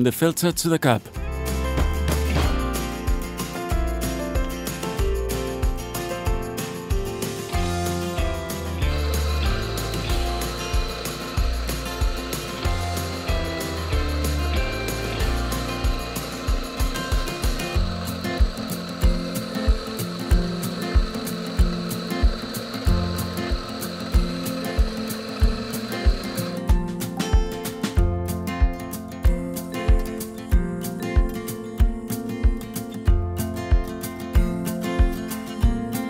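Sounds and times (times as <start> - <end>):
acoustic guitar music: 0.0 - 36.0
coffee grinder whining: 7.5 - 27.1.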